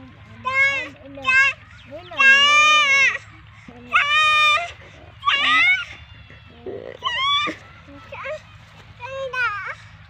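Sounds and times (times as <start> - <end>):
toddler babbling and squealing: 3.9 - 8.4.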